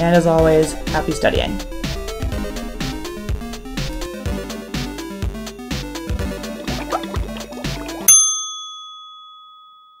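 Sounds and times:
bell-like ding: 8.1 - 10.0.

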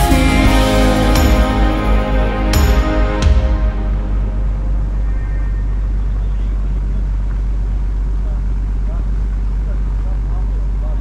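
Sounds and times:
boat engine rumble: 0.0 - 11.0.

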